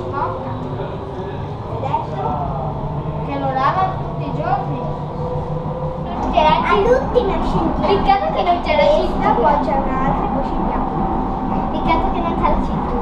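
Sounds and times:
people's voices: 0.0s - 13.0s
train rumbling on track: 0.0s - 13.0s.

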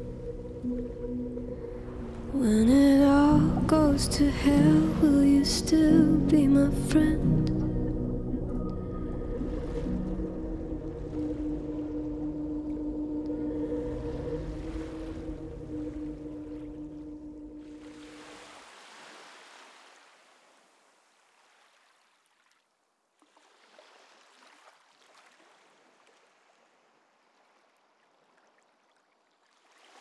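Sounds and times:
low held music tones: 0.0s - 18.4s
sea water washing: 7.3s - 20.5s.

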